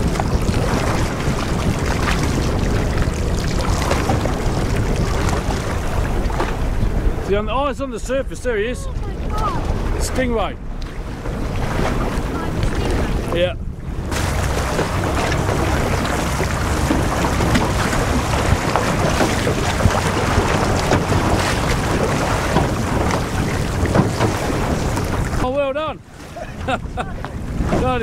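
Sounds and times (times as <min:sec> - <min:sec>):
water slapping: 0:00.0 - 0:28.0
wind buffeting microphone: 0:00.0 - 0:28.0.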